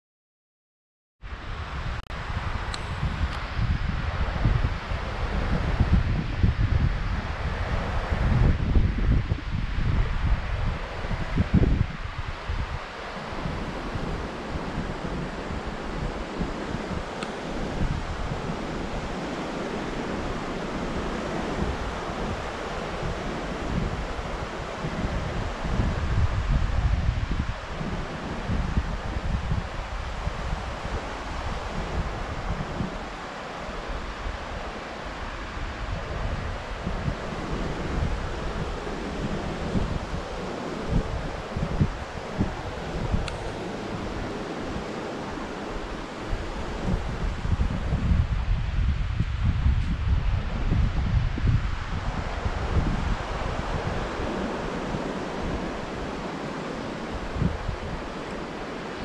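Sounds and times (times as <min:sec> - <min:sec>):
wind buffeting microphone: 0:01.3 - 0:59.0
surf breaking on beach: 0:01.5 - 0:59.0.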